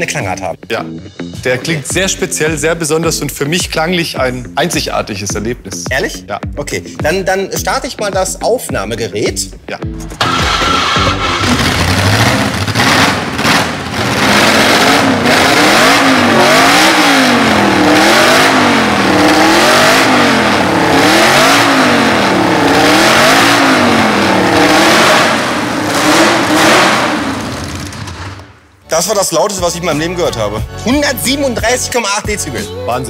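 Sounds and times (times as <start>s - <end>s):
racing car engine revving: 10.1s - 28.6s.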